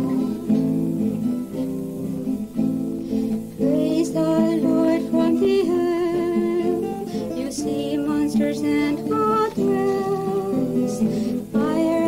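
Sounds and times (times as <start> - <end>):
acoustic guitar: 0.0 - 12.0
women's choir singing: 3.6 - 6.8.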